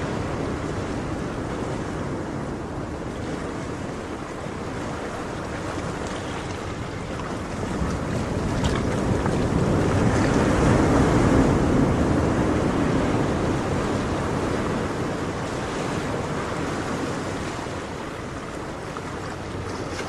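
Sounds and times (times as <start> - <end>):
ocean wave washing: 0.0 - 20.0.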